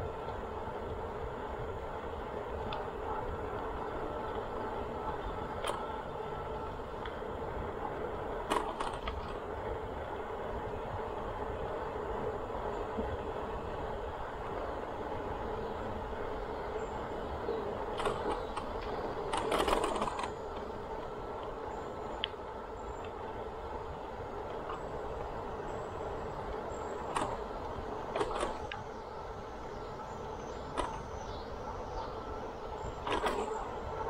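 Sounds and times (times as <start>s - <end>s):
bicycle clicks: 0.0s - 34.0s
bicycle rattle: 0.0s - 34.0s
bicycle tyres rolling on pavement: 0.0s - 34.0s.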